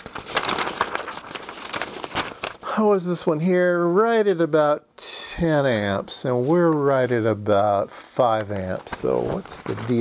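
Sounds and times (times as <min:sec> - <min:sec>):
paper sheets rustling: 0:00.0 - 0:02.8, 0:06.0 - 0:10.0.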